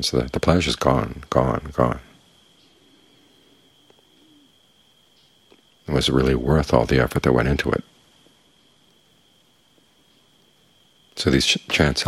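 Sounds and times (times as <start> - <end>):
faint high whine: 0.0 - 12.0
low bird call: 1.2 - 6.2.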